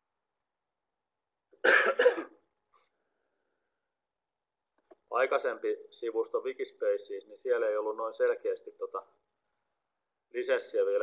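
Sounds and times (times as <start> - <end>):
person coughing: 1.6 - 2.4.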